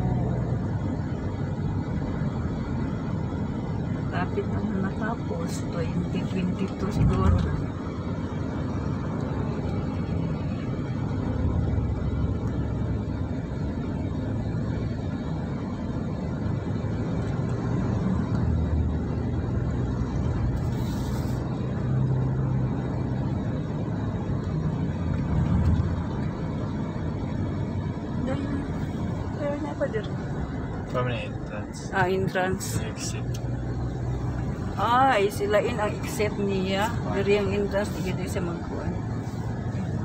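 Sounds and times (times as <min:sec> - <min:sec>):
car tyres and engine rumble: 0:00.0 - 0:40.0.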